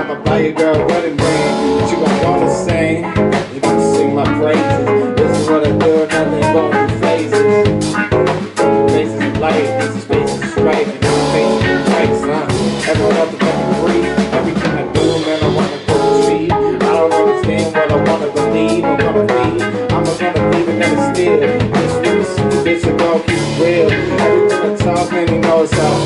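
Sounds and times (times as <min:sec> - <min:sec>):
bass guitar: 0:00.0 - 0:26.0
drum kit: 0:00.0 - 0:26.0
electric guitar: 0:00.0 - 0:26.0
organ keyboard: 0:00.0 - 0:26.0.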